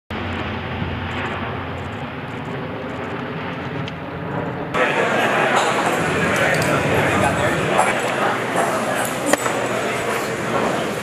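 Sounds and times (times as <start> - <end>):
turboprop aircraft droning overhead: 0.1 - 11.0
chatter of many voices: 4.7 - 11.0.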